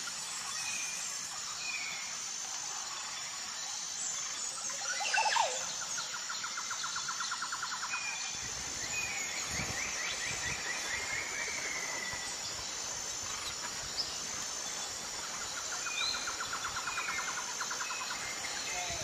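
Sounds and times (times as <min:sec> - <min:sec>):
high insect-like hiss: 0:00.0 - 0:19.0.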